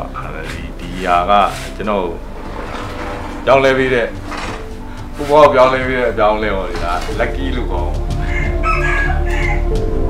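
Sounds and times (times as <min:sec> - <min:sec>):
background music: 0:00.0 - 0:10.0
rooster crowing: 0:08.2 - 0:09.7.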